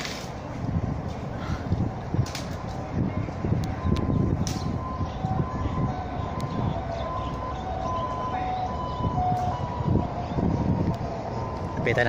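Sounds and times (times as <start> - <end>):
low rumble of traffic: 0.0 - 12.0
wind: 0.0 - 12.0.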